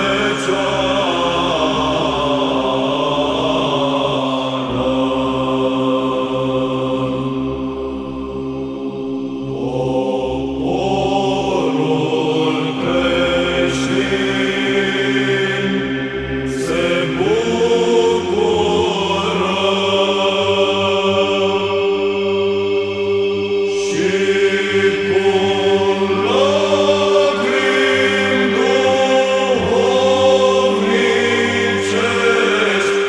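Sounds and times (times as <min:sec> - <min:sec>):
voices chanting: 0:09.5 - 0:33.0.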